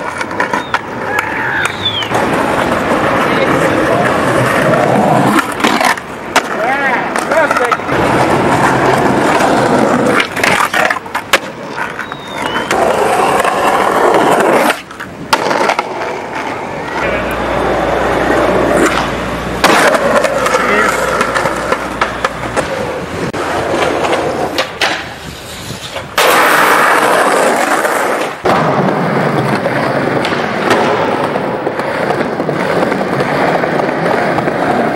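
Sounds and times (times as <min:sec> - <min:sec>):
skateboard clacking: 0:00.0 - 0:34.9
skateboard wheels rolling on concrete: 0:00.0 - 0:34.9.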